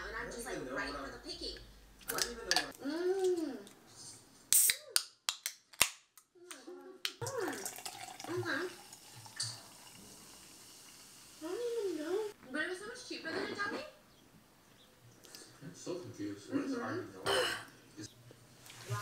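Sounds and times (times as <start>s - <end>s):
soda fizzing in glass: 7.2s - 12.3s.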